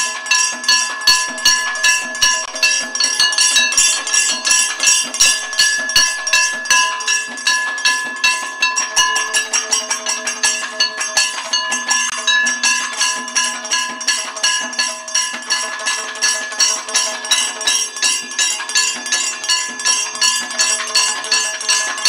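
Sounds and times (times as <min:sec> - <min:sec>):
drums struck in fast rhythm: 0:00.0 - 0:22.0
ringing cymbals: 0:00.0 - 0:22.0
ringing gong: 0:00.0 - 0:22.0.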